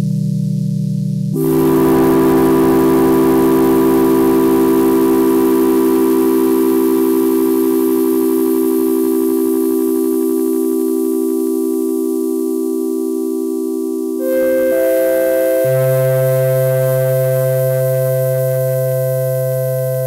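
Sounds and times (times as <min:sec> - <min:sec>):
synthesizer chords: 0:01.4 - 0:08.8, 0:14.2 - 0:20.0.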